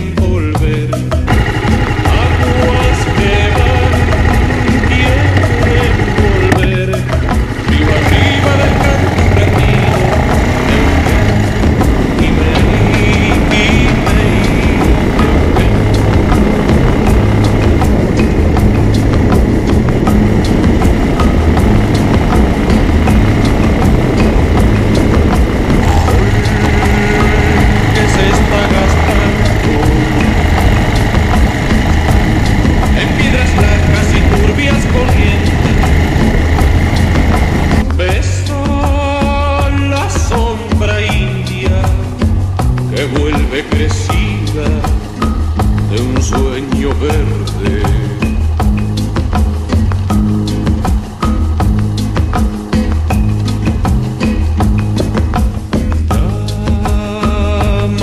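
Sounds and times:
background music: 0.0 - 58.0
motorcycle engine running: 0.0 - 58.0.

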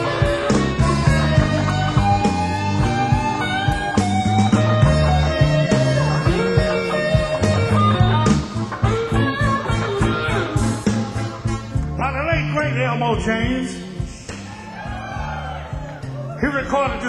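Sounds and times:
electric guitar bending notes: 0.0 - 13.0
blues band playing: 0.0 - 17.0.

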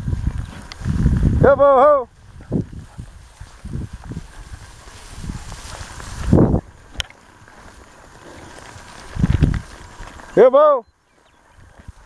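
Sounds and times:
wind rumbling on microphone: 0.0 - 12.0
low thumps from horse riding: 2.2 - 10.3.

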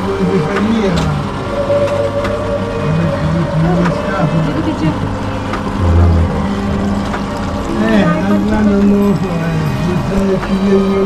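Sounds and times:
steady low drone: 2.4 - 9.4
brief low sound: 5.8 - 7.6.

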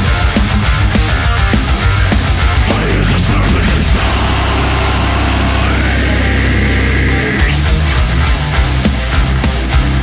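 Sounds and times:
distorted metal guitars and bass: 0.0 - 10.0
high guitar note sliding up: 2.6 - 8.2.

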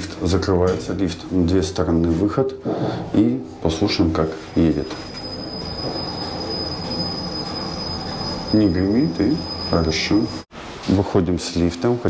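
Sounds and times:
elevator running hum: 3.0 - 10.4
thin high whine: 3.2 - 10.5.

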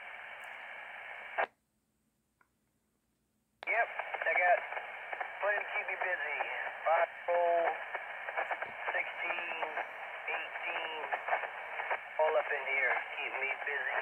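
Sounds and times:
steady radio hiss: 0.0 - 1.5, 3.6 - 14.0
voice over radio speaker: 3.6 - 14.0.

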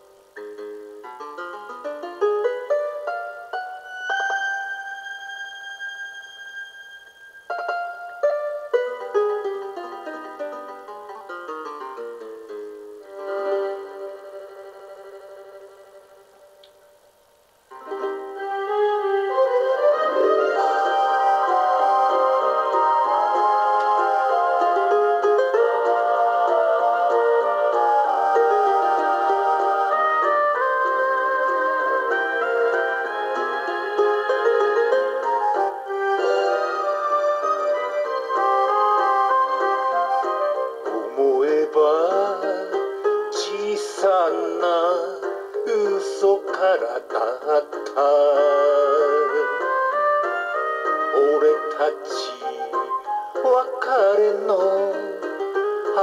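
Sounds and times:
lead melody with vibrato: 0.0 - 16.8, 17.7 - 56.0
karaoke pop ballad backing track: 20.1 - 56.0.

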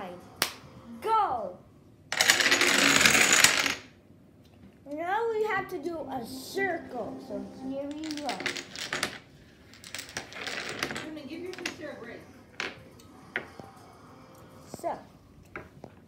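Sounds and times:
dominoes clicking on wooden table: 2.2 - 3.9, 8.0 - 11.8.

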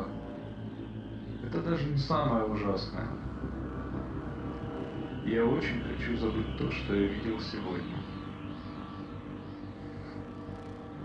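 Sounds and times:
low rumble: 0.0 - 11.0
sustained drone tones: 0.0 - 11.0.

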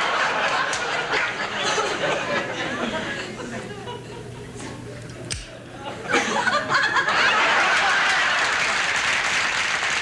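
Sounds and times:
studio audience laughter: 0.0 - 4.8, 5.6 - 9.7
audience murmuring: 0.6 - 6.5.

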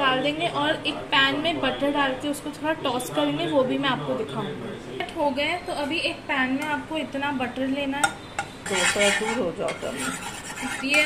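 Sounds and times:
metal spatula scraping frying pan: 8.4 - 11.0.

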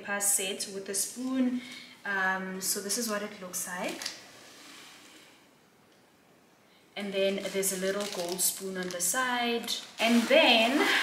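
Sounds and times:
soft hiss: 0.4 - 11.0.

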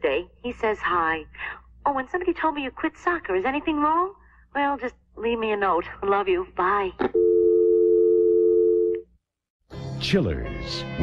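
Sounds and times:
steady dial tone: 7.1 - 9.1.

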